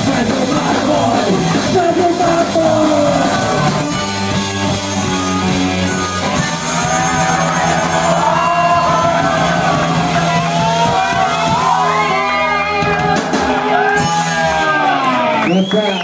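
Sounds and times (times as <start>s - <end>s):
person shouting and singing: 0.0s - 4.0s
punk rock band playing live: 0.0s - 15.7s.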